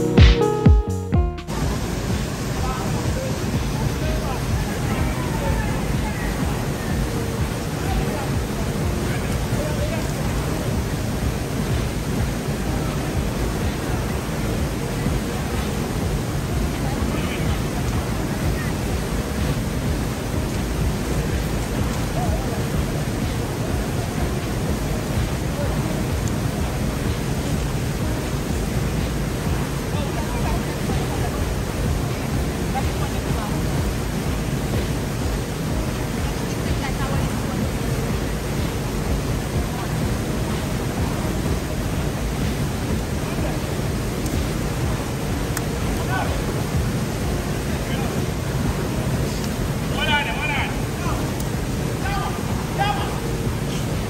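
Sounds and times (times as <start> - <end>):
music track: 0.0 - 54.0
rushing water: 0.0 - 54.0.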